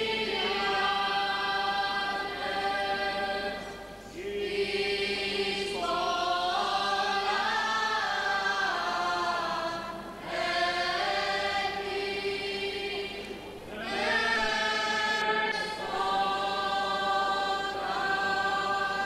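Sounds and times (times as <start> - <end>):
choir singing a chant: 0.0 - 19.0.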